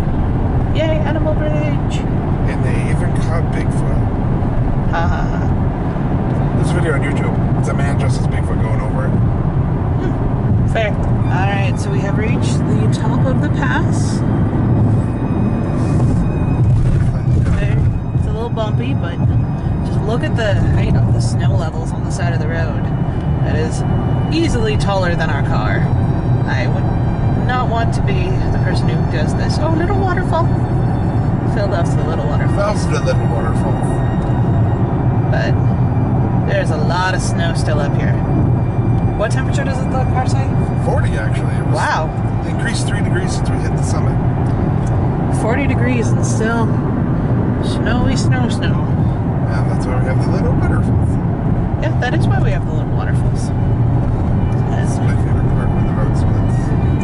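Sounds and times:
road and engine rumble: 0:00.0 - 0:57.0
song on car stereo: 0:10.0 - 0:46.6.

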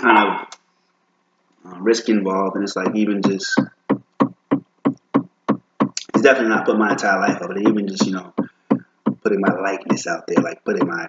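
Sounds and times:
short sharp knocks: 0:03.2 - 0:11.0.

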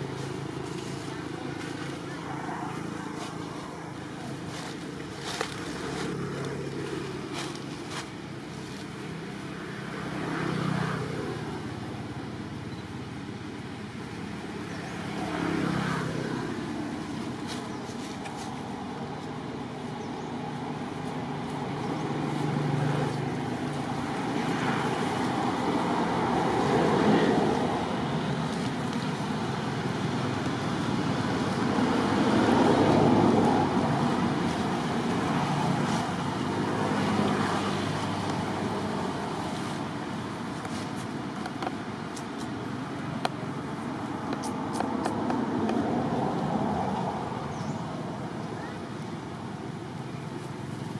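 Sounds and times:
road traffic passing: 0:00.0 - 0:50.9.

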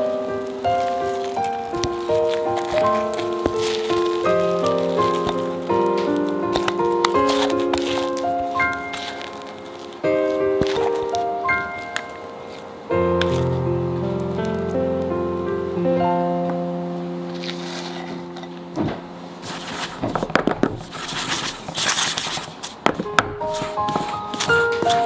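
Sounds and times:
background music: 0:00.0 - 0:19.6.

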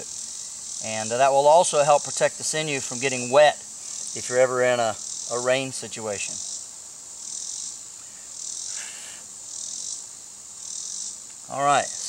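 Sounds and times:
insects calling in pulses: 0:00.0 - 0:12.0.

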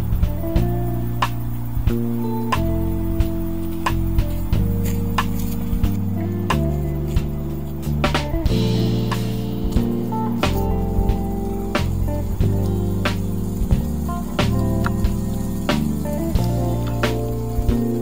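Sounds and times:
music with held chords and beat: 0:00.0 - 0:18.0
rush of hiss: 0:00.0 - 0:18.0.

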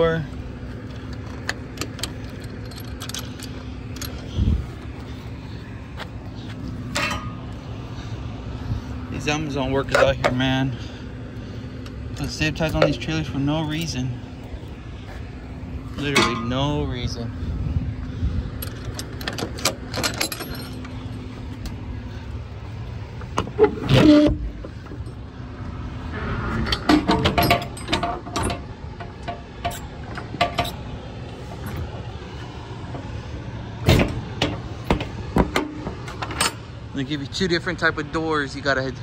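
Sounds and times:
steady low hum: 0:00.0 - 0:39.0
metal door hardware clanking: 0:12.2 - 0:14.0, 0:18.6 - 0:21.0, 0:26.6 - 0:30.8, 0:33.8 - 0:36.6.

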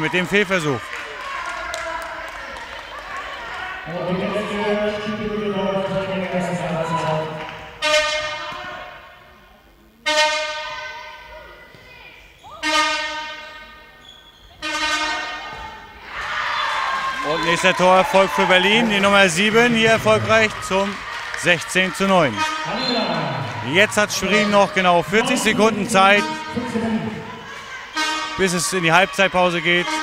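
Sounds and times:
horn blasts in a hall: 0:03.8 - 0:11.5, 0:12.5 - 0:15.5, 0:22.2 - 0:30.0.

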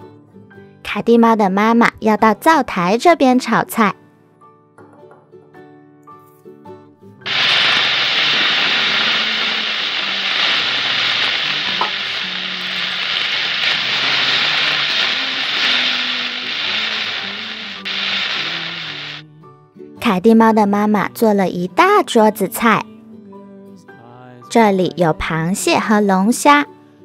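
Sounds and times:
soft background music: 0:00.0 - 0:07.3, 0:19.2 - 0:27.0
frying sizzle: 0:07.3 - 0:19.2.

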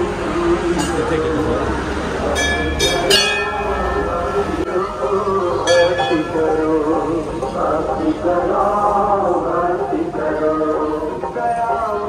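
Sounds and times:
brass bells ringing: 0:02.3 - 0:04.6, 0:05.6 - 0:06.8.

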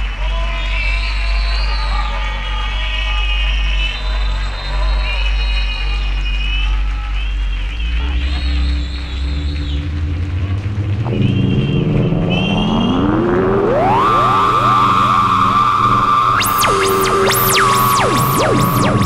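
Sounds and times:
electronic synthesizer music: 0:07.6 - 0:19.0.

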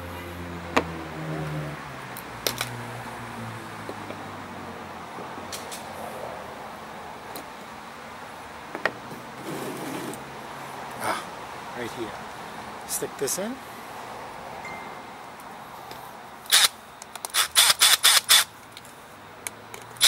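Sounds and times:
vehicle engine humming: 0:00.0 - 0:17.4.

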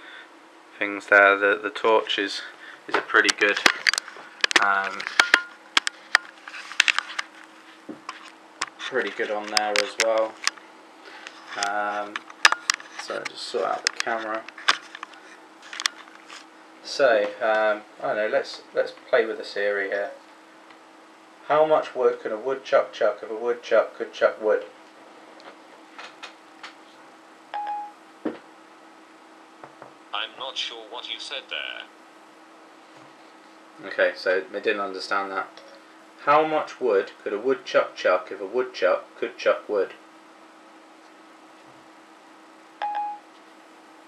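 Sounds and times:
faint low hum: 0:00.0 - 0:25.8, 0:29.6 - 0:40.0.

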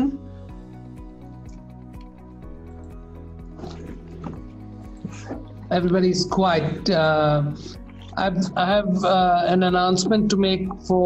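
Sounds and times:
background music with chords: 0:00.0 - 0:11.0.

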